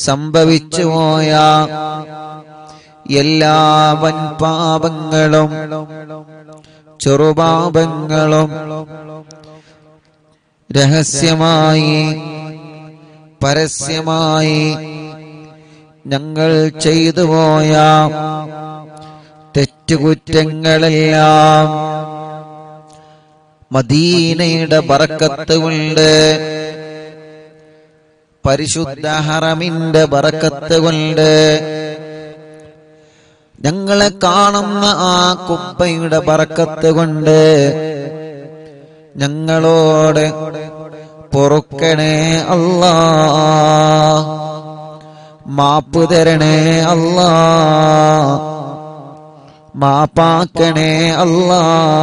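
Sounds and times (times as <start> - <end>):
man chanting: 0.0 - 10.0, 10.7 - 33.0, 33.6 - 52.0.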